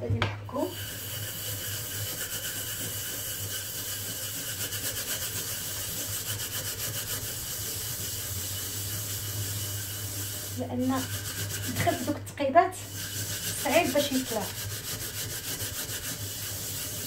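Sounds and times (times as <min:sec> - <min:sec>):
scrubbing a frying pan: 0:00.6 - 0:17.0.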